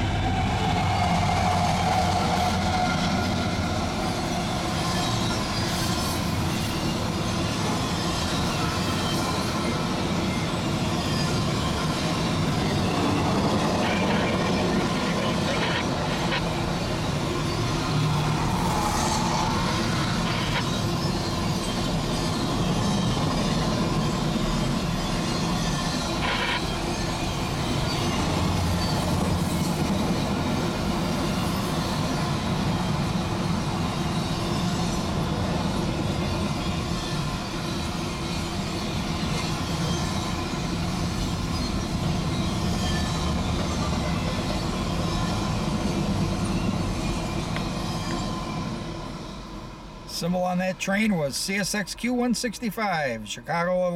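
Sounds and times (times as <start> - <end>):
train wheel squeal: 0.0 - 51.2
freight train wheels rumbling: 0.0 - 53.5.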